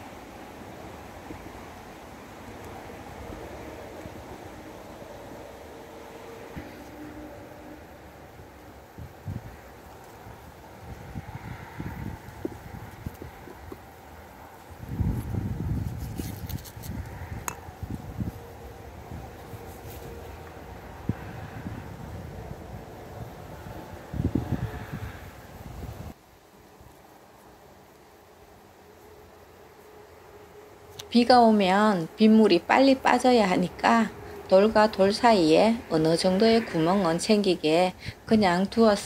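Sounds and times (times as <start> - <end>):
wind buffeting microphone: 8.2 - 26.2.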